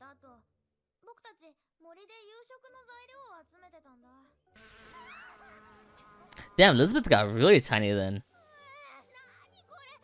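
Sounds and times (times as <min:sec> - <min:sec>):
faint insect buzzing: 0:04.6 - 0:07.4.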